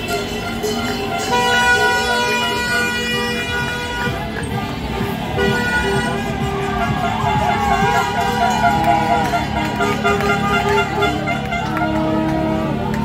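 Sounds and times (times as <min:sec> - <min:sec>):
crowd celebrating: 0:00.0 - 0:13.0
horns honking: 0:00.0 - 0:13.0.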